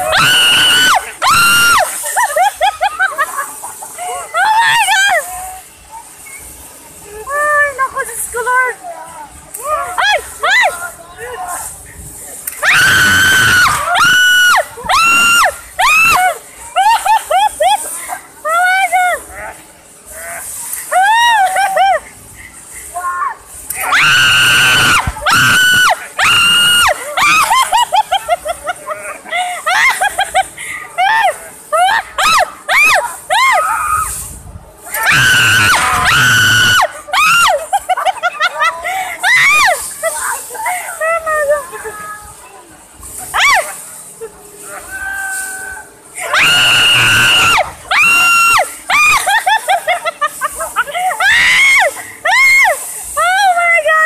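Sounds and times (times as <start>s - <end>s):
woman laughing: 20.9s - 22.1s, 27.2s - 32.4s, 37.0s - 39.4s, 40.0s - 41.9s, 48.9s - 52.4s.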